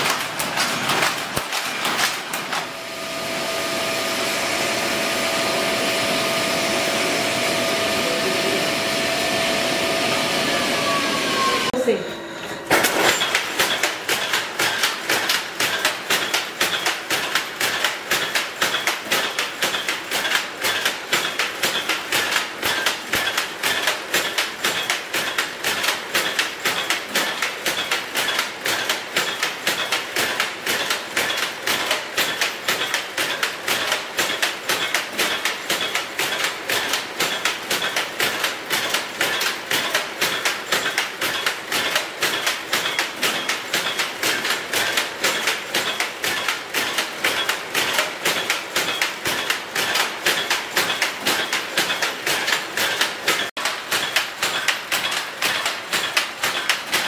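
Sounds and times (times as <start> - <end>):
power loom clattering: 0.0 - 11.7, 12.4 - 57.0.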